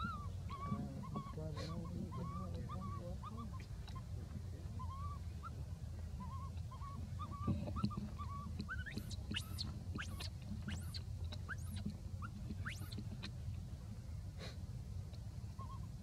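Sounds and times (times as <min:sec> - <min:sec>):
baby monkey whimpering and squealing: 0:00.0 - 0:04.1, 0:04.8 - 0:05.6, 0:06.2 - 0:13.4, 0:15.6 - 0:16.0.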